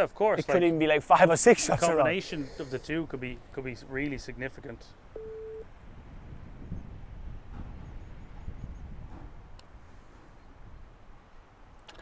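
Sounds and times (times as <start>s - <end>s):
wind rumble on microphone: 5.6s - 11.9s.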